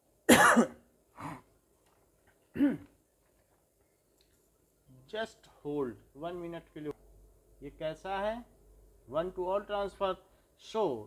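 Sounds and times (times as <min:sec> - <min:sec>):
man coughing: 0:00.3 - 0:01.4, 0:02.5 - 0:02.9.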